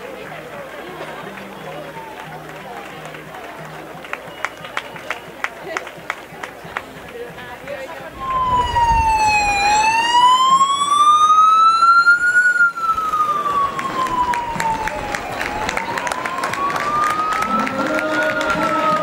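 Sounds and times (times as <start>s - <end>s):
emergency vehicle siren wailing: 8.1s - 19.0s.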